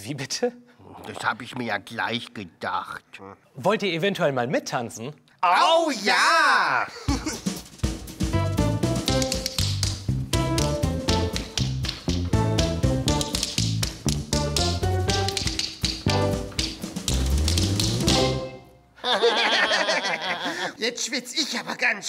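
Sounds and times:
upbeat music with bass line: 7.3 - 18.6
tap shoes clicking: 9.1 - 18.3.

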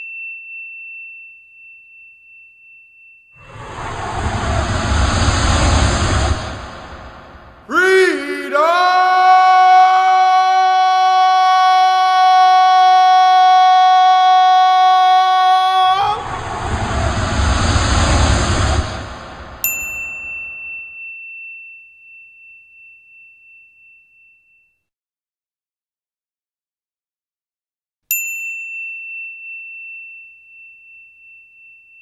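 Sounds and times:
whoosh with deep rumble: 3.4 - 7.8, 15.7 - 20.8.

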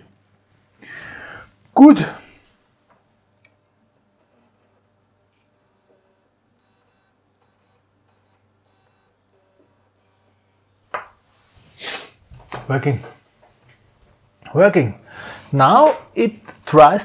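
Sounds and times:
faint electrical hum: 0.0 - 17.0.

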